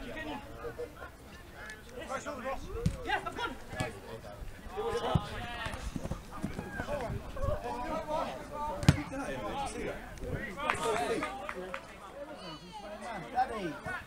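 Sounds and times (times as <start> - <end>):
players shouting: 1.4 - 11.5
ball kick thuds: 2.8 - 3.1, 3.7 - 4.1, 4.8 - 7.2, 8.7 - 9.2.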